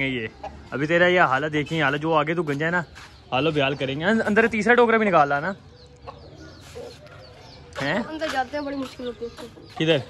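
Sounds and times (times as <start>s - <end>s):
chickens clucking: 0.0s - 10.0s.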